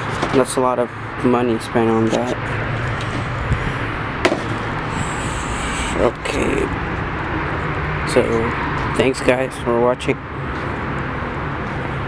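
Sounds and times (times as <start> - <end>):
steady background noise: 0.0 - 12.0
dull thump: 4.2 - 4.6.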